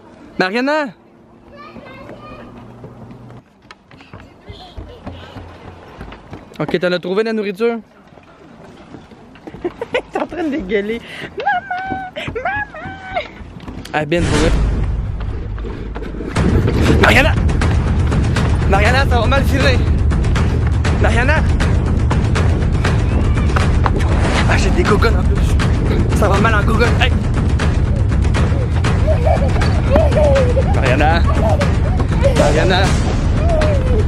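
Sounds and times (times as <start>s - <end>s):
footsteps on wooden boardwalk: 1.2s - 16.9s, 27.4s - 32.6s
low thuds: 14.2s - 34.0s.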